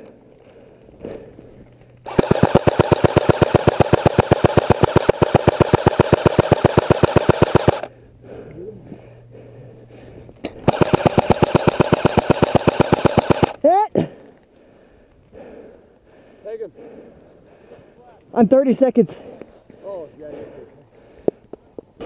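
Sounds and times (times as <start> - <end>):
airsoft gun firing full auto: 2.1 - 7.9, 10.6 - 13.6.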